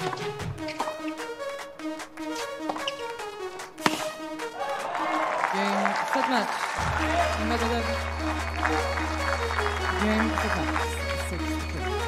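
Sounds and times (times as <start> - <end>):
background music: 0.0 - 12.0
racket hitting ball: 3.8 - 4.2
crowd cheering and applause: 4.4 - 12.0.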